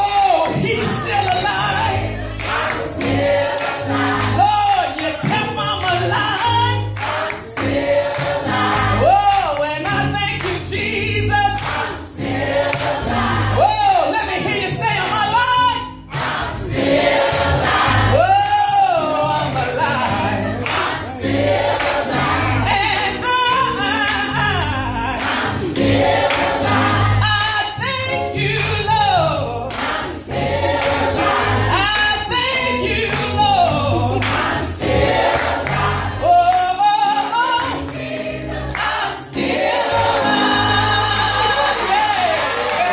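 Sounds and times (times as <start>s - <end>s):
gospel choir singing: 0.0s - 42.9s
instrumental accompaniment: 0.0s - 42.9s
lead singer: 0.0s - 42.9s.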